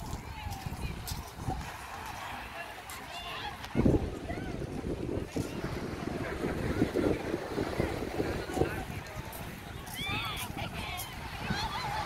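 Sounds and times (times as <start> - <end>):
people talking faintly: 0.0 - 12.0
wind buffeting microphone: 0.0 - 12.0.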